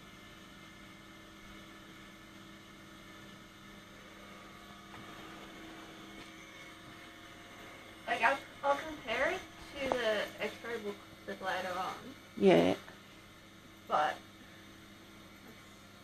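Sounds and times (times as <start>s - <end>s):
faint electrical hum: 0.0s - 16.0s.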